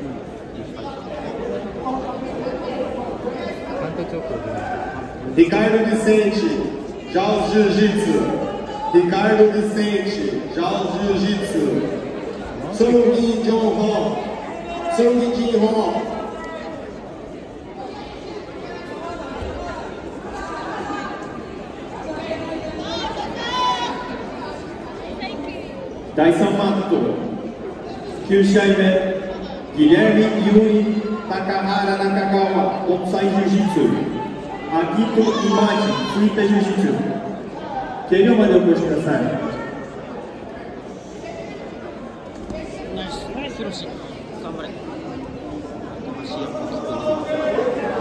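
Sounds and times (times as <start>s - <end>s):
murmur of many people: 0.0s - 48.0s.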